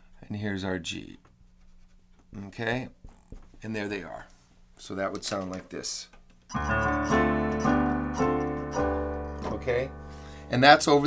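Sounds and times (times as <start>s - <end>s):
keyboard playing chords: 6.5s - 10.8s.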